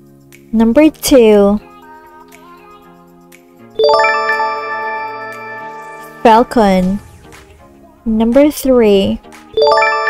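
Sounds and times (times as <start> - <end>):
soft background music: 0.0 - 10.0
bright ding chime: 3.8 - 6.9.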